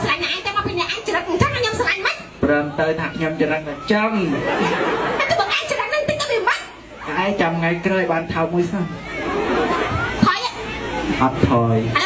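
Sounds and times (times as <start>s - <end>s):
fast animated speech: 0.0s - 12.0s.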